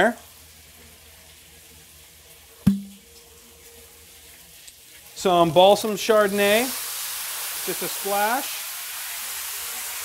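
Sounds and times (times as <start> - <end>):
food sizzling in a skillet: 0.0 - 10.0
sharp knock with low ring: 2.7 - 3.0.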